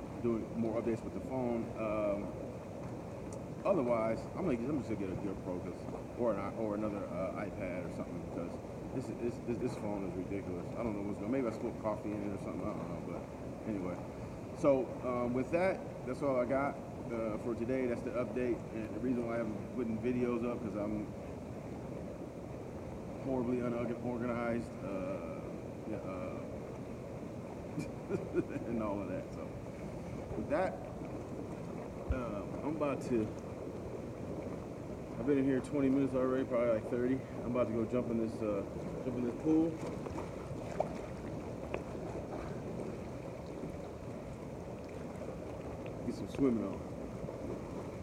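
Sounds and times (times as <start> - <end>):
hot tub water bubbling: 0.0 - 48.0.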